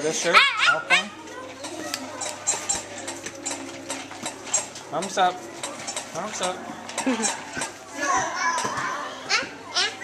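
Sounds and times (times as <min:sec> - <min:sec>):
young children chattering: 0:00.0 - 0:03.8, 0:07.0 - 0:10.0.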